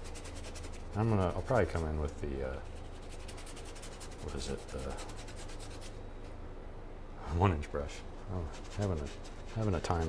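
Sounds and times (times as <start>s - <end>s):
paintbrush scrubbing canvas: 0.0s - 6.0s, 8.4s - 10.0s.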